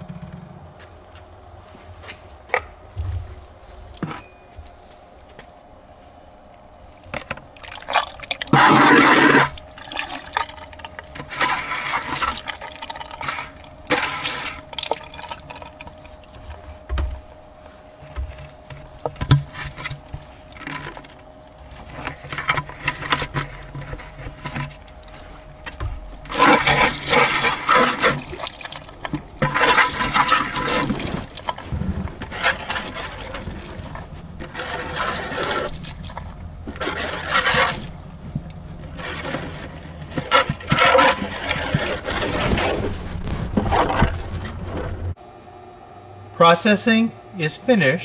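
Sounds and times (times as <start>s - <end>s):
steady low hum: 0.0s - 48.0s
muddy water pouring into bucket: 26.3s - 38.0s.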